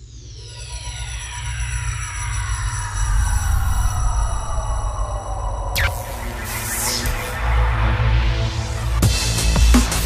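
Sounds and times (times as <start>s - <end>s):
synthesized tones sweeping downward: 2.7s - 8.7s.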